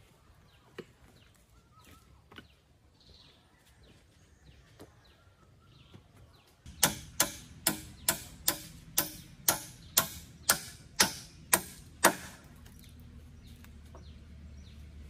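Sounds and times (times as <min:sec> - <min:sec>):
hammer striking wooden pole: 0:06.7 - 0:12.5.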